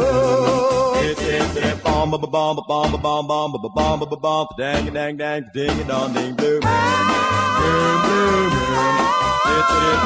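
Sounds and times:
close-harmony vocal group singing: 0.0 - 10.0
pulsing bass line: 5.6 - 10.0.

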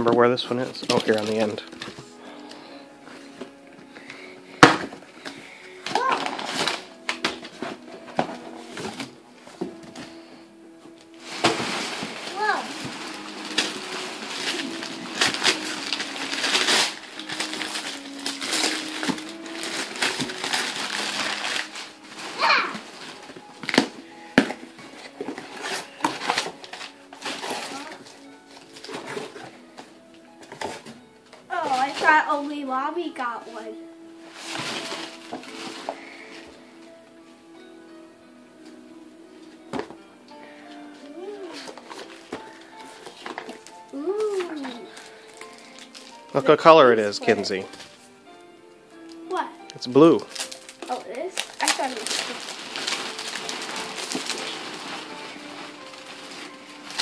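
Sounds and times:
background music: 0.0 - 57.0
wrapping paper tearing: 0.8 - 1.8, 5.8 - 9.2, 11.2 - 29.7, 34.2 - 36.4, 41.2 - 47.4, 49.9 - 57.0.

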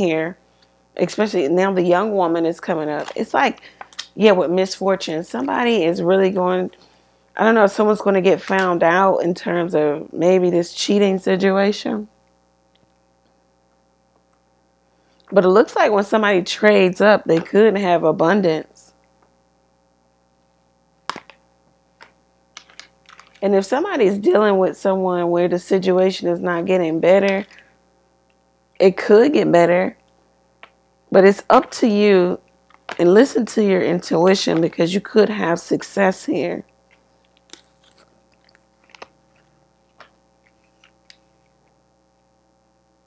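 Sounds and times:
cards clicking and snapping: 21.1 - 21.4, 22.0 - 23.4, 36.9 - 41.2.

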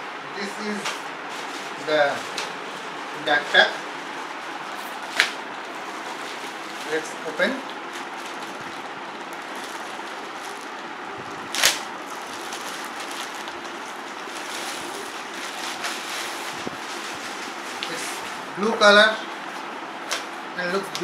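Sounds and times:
plastic bag rustling: 0.4 - 20.5.

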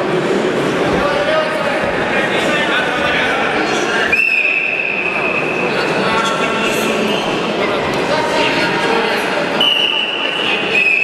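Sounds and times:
crowd noise in hall: 0.0 - 11.0.

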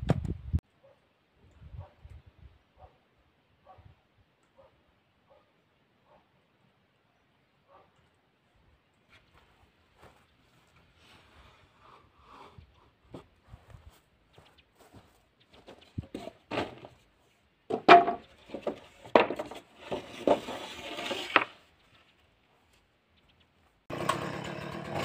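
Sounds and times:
wooden boards clattering: 15.6 - 17.0, 17.7 - 21.6.

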